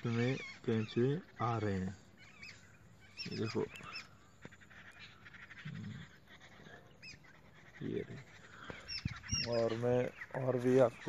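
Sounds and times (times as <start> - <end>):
birds chirping faintly: 0.0 - 11.0
faint quick bird chatter: 0.0 - 11.0.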